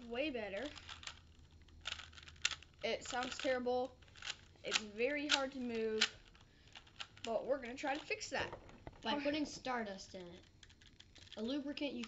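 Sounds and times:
puzzle cube clicking and scraping: 0.5 - 12.0.

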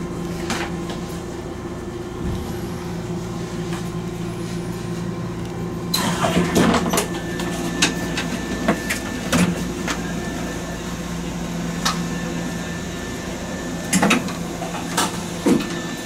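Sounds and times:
train equipment low hum: 0.0 - 16.0.

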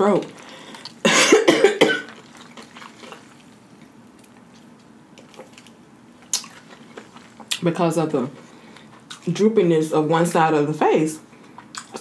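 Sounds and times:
woman coughing: 1.0 - 2.2.

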